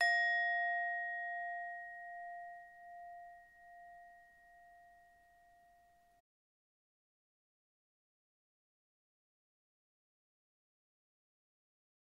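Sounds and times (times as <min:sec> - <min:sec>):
struck bell ringing: 0:00.0 - 0:06.2.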